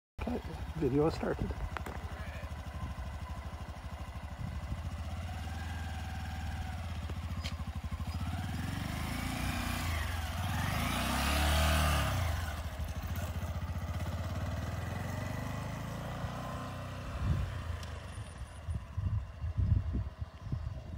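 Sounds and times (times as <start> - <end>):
motorcycle engine putter: 7.0 - 8.4.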